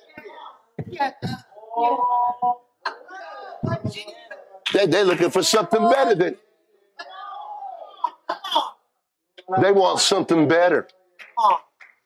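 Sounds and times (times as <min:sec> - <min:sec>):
person coughing: 0:08.0 - 0:08.8.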